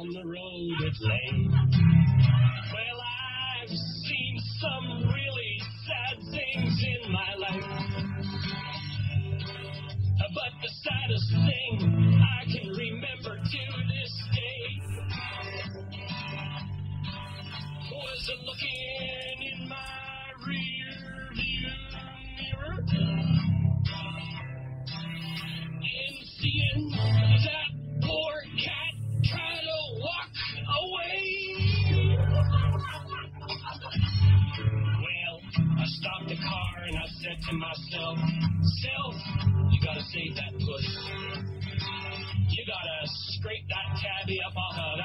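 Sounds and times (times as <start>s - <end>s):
guitar-led song on radio: 0.0s - 45.0s.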